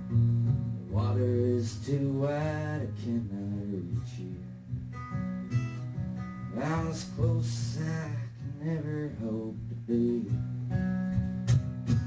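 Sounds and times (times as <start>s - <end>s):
man singing: 0.0s - 4.6s, 6.5s - 10.5s
acoustic guitar strummed: 0.0s - 12.0s.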